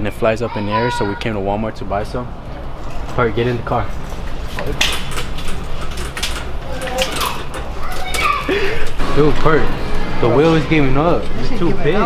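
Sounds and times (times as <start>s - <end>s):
metal shopping cart rattling: 2.9s - 9.6s.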